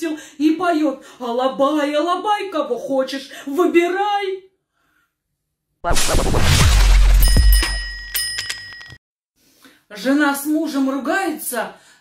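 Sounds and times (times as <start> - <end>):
bell-like notification chime: 7.2 - 9.0.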